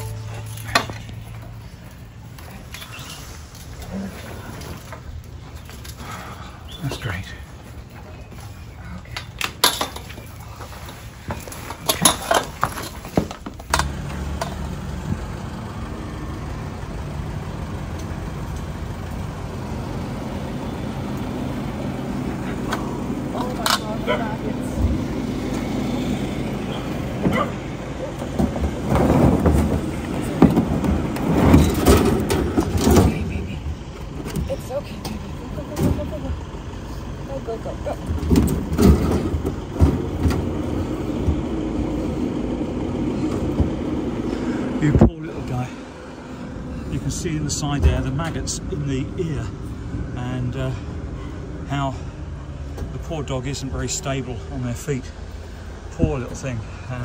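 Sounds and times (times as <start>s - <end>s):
vehicle engine idling: 0.0s - 57.0s.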